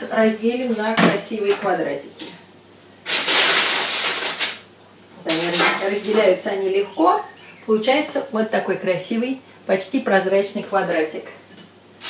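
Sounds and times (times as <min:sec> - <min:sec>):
crackers crunching as broken: 0:03.0 - 0:04.6.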